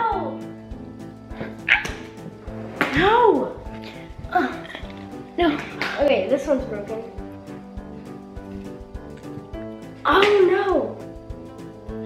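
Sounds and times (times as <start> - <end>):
background music with held tones: 0.0 - 12.0.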